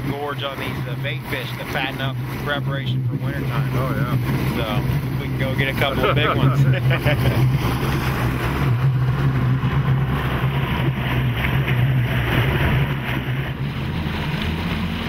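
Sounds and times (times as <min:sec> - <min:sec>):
outboard motor running: 0:00.0 - 0:15.0
water rushing past boat: 0:00.0 - 0:15.0.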